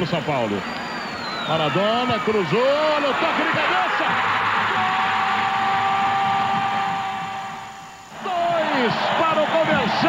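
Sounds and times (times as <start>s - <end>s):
stadium crowd cheering: 0.5s - 10.0s.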